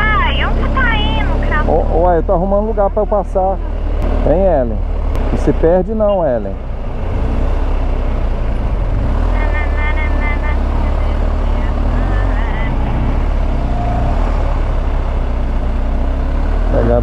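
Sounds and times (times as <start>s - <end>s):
motorcycle engine rumble: 0.0s - 17.0s
surrounding traffic: 0.0s - 17.0s.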